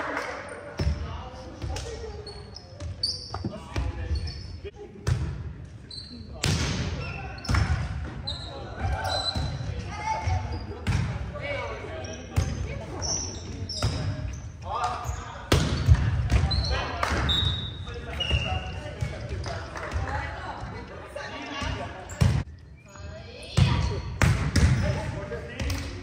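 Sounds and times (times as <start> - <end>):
sneaker squeaks on floor: 2.1 - 4.6, 5.8 - 6.4, 7.0 - 10.9, 12.0 - 19.8
volleyball struck by hands: 24.2 - 24.8.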